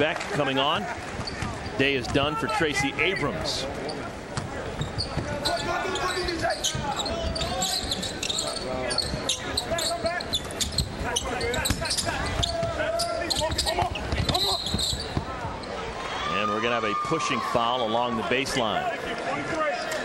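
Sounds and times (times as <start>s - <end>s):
voices of players and crowd: 0.0s - 20.0s.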